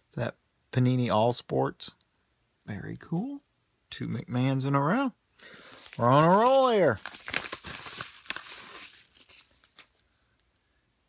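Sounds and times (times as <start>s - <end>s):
bubble mailer crinkling: 5.5s - 10.1s.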